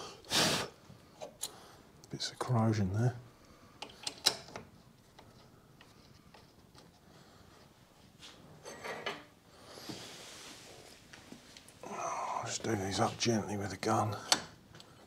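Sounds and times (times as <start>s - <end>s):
small metal clicks and knocks: 3.8s - 6.9s
soft hiss: 9.4s - 14.5s.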